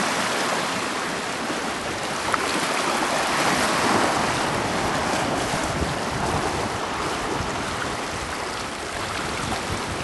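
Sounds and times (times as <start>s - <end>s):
ocean surf washing over rocks: 0.0s - 10.0s.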